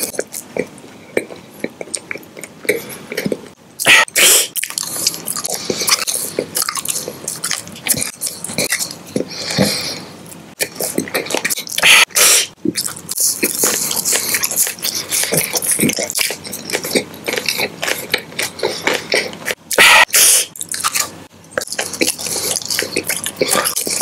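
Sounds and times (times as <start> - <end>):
chewing jelly candy: 0.0 - 24.0.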